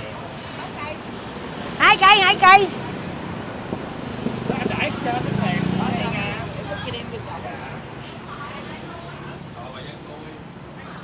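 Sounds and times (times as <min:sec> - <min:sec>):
street background noise: 0:00.0 - 0:11.0
people talking: 0:01.8 - 0:02.7, 0:04.5 - 0:11.0.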